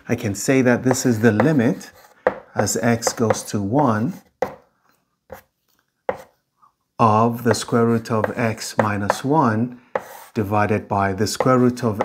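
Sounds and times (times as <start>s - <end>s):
chalk tapping on blackboard: 0.8s - 4.7s, 6.1s - 6.4s, 8.1s - 10.4s, 11.3s - 12.0s.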